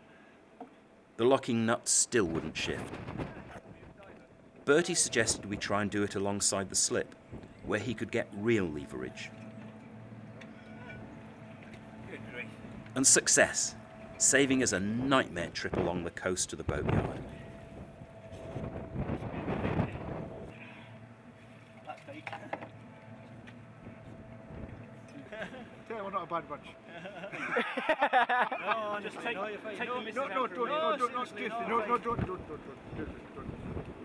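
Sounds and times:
faint outdoor background: 0.0 - 34.0
low mechanical hum: 0.0 - 34.0
men's voices: 1.2 - 9.3, 12.0 - 17.3, 28.5 - 33.6.

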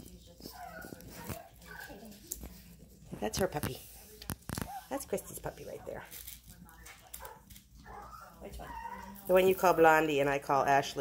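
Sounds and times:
puppies whimpering and yipping: 7.9 - 9.2.

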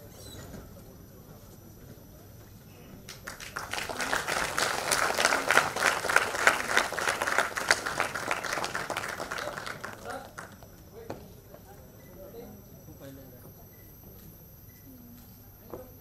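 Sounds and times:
audience applauding: 3.1 - 10.7.

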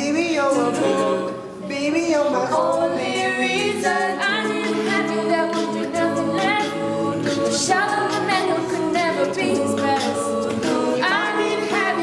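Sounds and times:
group singing in harmony: 0.0 - 12.0
beatboxing: 2.8 - 12.0.

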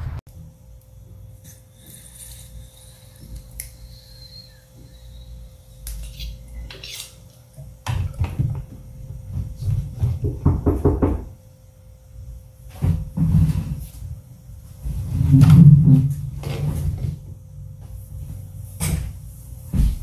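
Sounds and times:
knocking at a door: 10.1 - 11.3.

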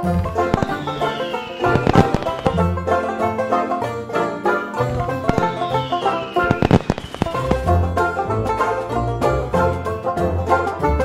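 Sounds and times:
intro music: 0.0 - 11.0
firework descending whistle: 0.4 - 2.8, 4.8 - 7.7
firework crackling pops: 5.3 - 7.5.

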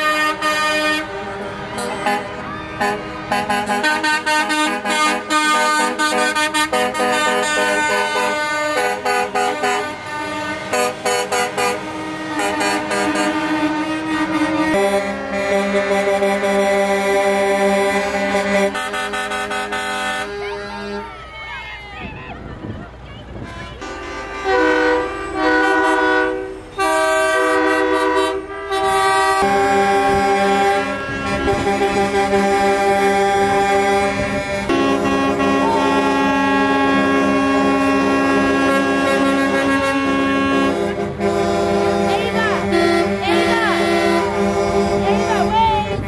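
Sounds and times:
truck air horns honking: 0.0 - 21.3, 23.3 - 46.0.

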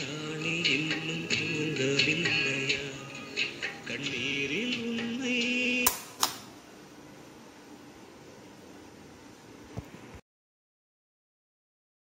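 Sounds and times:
song from cassette speaker: 0.0 - 6.5
faint tape hiss: 0.0 - 10.2
tape deck sharp clicks: 5.8 - 6.6.

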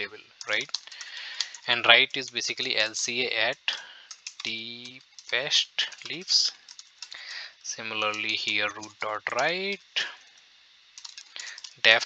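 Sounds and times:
computer keyboard typing: 0.0 - 10.2, 11.0 - 12.0.

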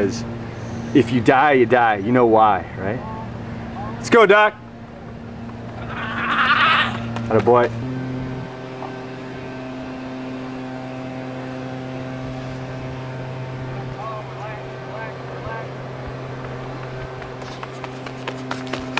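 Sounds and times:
mechanical hum: 0.0 - 18.9
running footsteps on track: 16.0 - 18.9.

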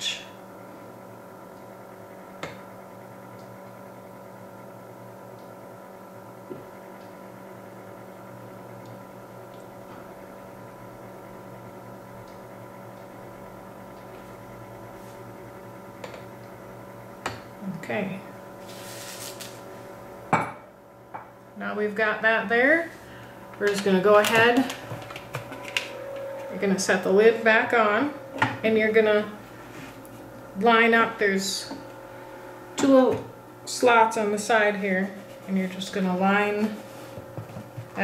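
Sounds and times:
incubator electric hum: 0.0 - 38.0.

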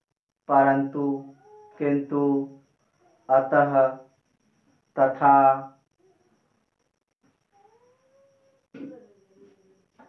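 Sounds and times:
cat meowing: 1.3 - 1.8, 7.5 - 9.3.

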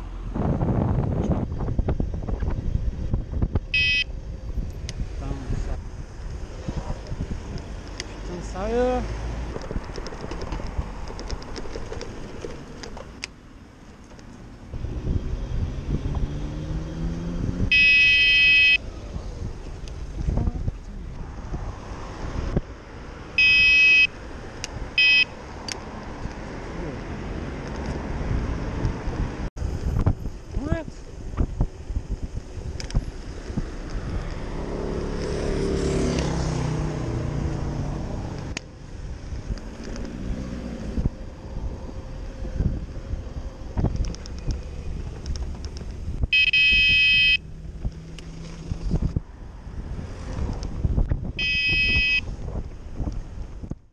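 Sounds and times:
wind noise on microphone: 0.0 - 8.4, 9.2 - 13.0, 14.6 - 25.2, 27.2 - 53.9
passing road traffic: 0.0 - 53.9.

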